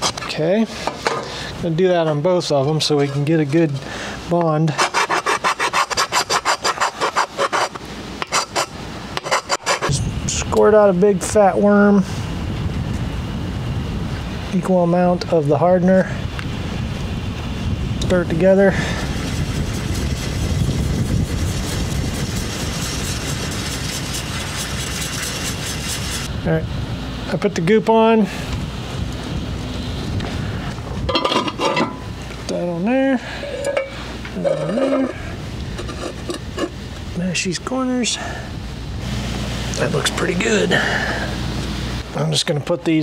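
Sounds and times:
hand file scraping metal: 4.7s - 10.0s, 35.8s - 36.8s
wind noise on microphone: 8.2s - 27.0s, 28.3s - 32.4s.

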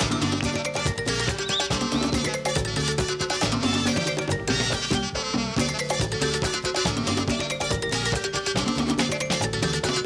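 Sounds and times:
conga and tambora drums: 0.0s - 10.0s
live merengue band: 0.0s - 10.0s.

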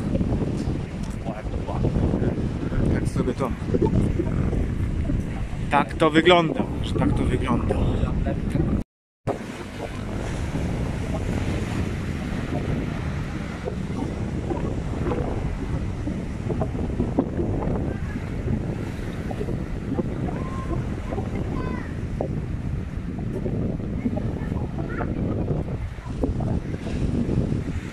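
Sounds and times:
sea waves breaking on rocks: 0.0s - 27.9s
wind buffeting microphone: 0.0s - 27.9s.

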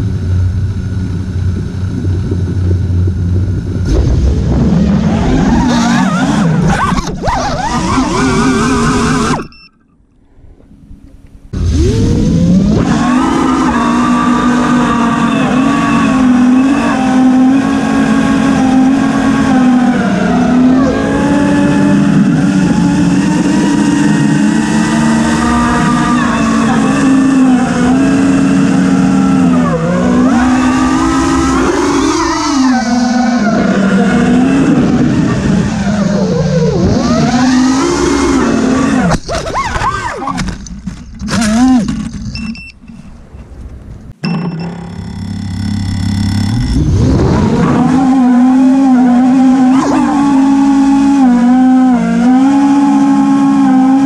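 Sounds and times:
quadcopter motors whining: 0.0s - 9.7s, 11.6s - 40.4s, 44.4s - 54.0s.

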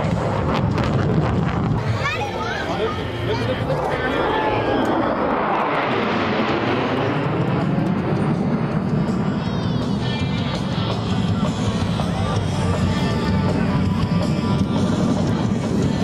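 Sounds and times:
music: 0.0s - 4.4s, 7.5s - 16.0s
jet engines flying overhead: 0.0s - 16.0s.

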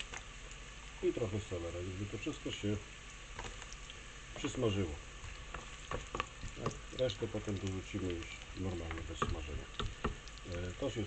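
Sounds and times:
vegetables sizzling in hot oil: 0.0s - 11.0s.

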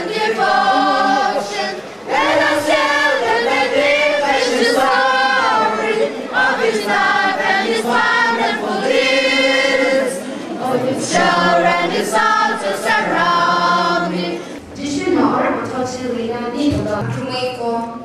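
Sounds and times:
choir singing sustained notes: 0.0s - 16.6s.

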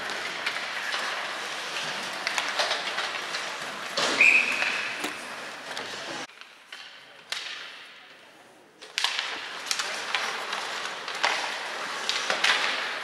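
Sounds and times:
skates scraping on ice: 0.0s - 13.0s
sticks and puck clacking: 0.0s - 13.0s.

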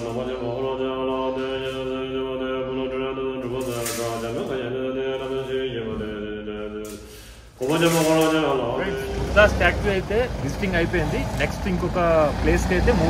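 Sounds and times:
man chanting on held notes: 7.6s - 13.0s.

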